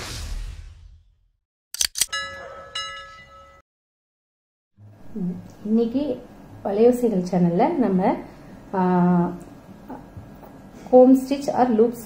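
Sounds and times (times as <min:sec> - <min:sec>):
bell chime: 0:02.1 - 0:03.6.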